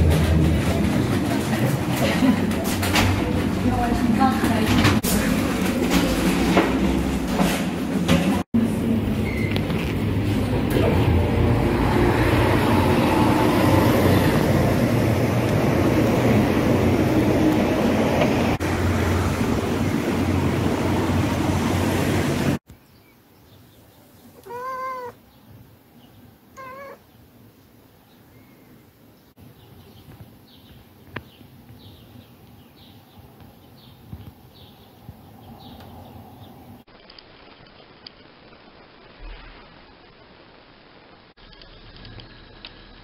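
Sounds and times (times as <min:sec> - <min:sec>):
loud traffic noise: 0:00.0 - 0:22.6
cat meowing: 0:24.4 - 0:25.2, 0:26.5 - 0:27.0.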